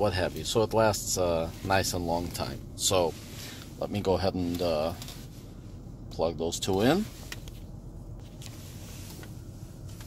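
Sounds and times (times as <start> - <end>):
low hum in car cabin: 0.0 - 10.0.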